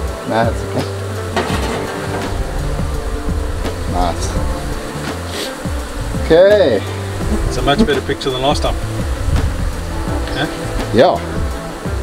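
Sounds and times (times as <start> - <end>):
background music: 0.0 - 12.0
bees buzzing: 0.0 - 12.0.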